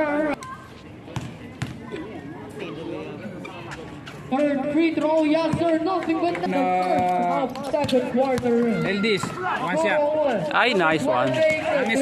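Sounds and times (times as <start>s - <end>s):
basketball bouncing on hard court: 7.8s - 8.8s.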